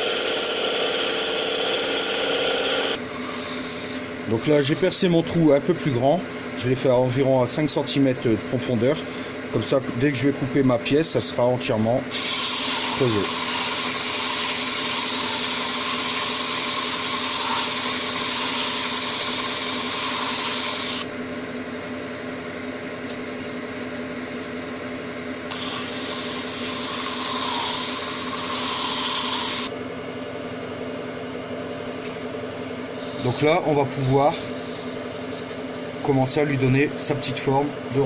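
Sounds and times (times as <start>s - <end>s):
turning tool cutting wood: 0.0s - 5.0s, 12.1s - 21.1s, 25.5s - 29.7s, 33.0s - 36.8s
wood lathe motor humming: 0.0s - 5.0s, 12.2s - 21.1s, 25.5s - 29.7s, 32.9s - 37.2s
sandpaper hissing on spinning wood: 12.2s - 21.0s, 25.5s - 29.7s, 33.0s - 36.6s.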